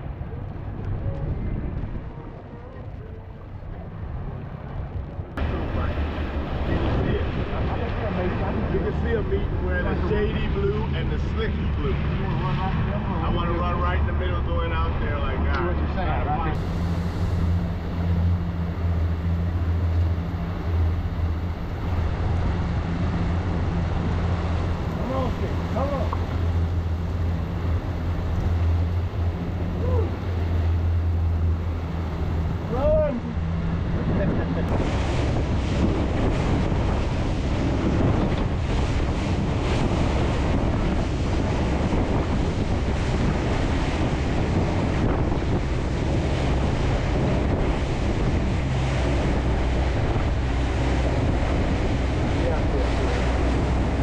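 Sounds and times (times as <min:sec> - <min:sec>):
boat engine drone: 0:00.0 - 0:54.0
water rushing past hull: 0:00.0 - 0:54.0
wind on microphone: 0:00.0 - 0:54.0.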